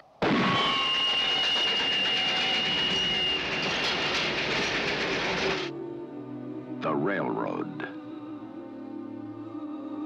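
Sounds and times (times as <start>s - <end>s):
high steady squeal: 0.4s - 5.7s
train running: 0.7s - 5.8s
quiet music: 5.7s - 10.0s.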